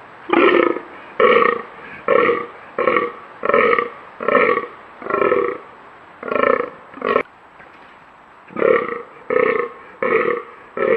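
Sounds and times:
deer groaning: 0.3s - 5.6s, 8.5s - 10.9s.

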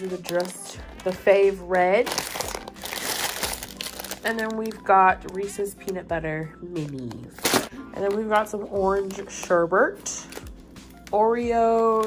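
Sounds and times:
plastic bags crinkling: 0.0s - 1.3s, 1.9s - 5.9s, 6.9s - 8.4s.

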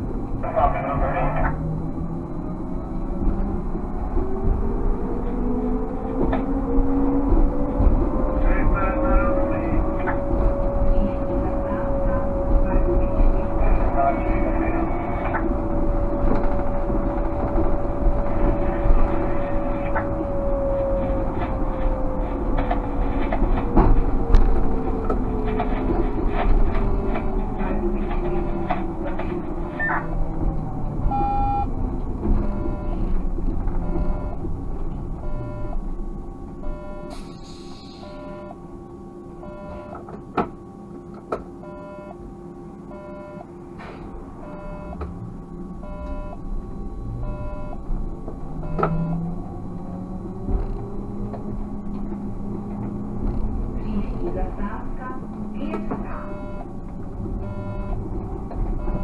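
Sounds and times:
trolleybus electric drive whine: 0.0s - 59.0s
cab electronic beep: 29.6s - 30.3s, 31.0s - 31.7s, 32.3s - 33.1s, 33.8s - 34.5s, 35.2s - 35.9s, 36.6s - 38.6s, 39.4s - 40.2s, 41.5s - 42.2s, 42.8s - 43.5s, 44.4s - 51.4s, 55.8s - 56.7s, 57.4s - 58.1s, 58.7s - 59.0s.

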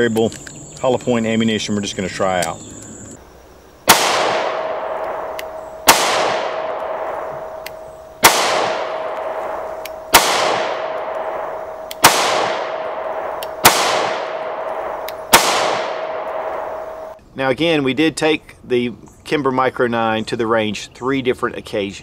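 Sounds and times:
pistol shots with ringing decay: 3.8s - 17.2s.

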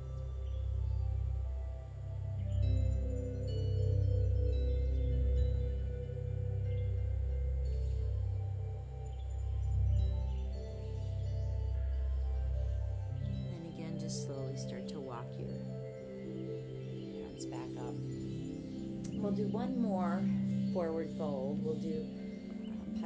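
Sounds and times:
slow ambient music: 0.0s - 23.0s.

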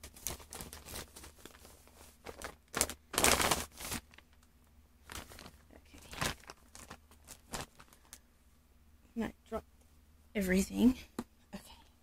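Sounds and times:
wrapping paper crinkling: 0.0s - 8.3s.

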